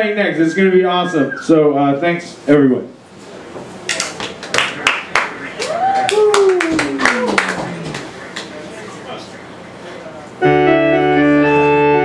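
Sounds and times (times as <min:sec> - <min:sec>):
audience applauding: 0:04.4 - 0:08.6
person cheering: 0:05.6 - 0:07.6.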